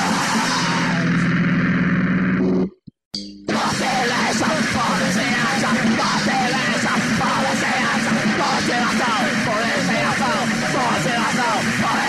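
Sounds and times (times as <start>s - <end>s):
harsh squealing noise glides: 0.0s - 2.8s.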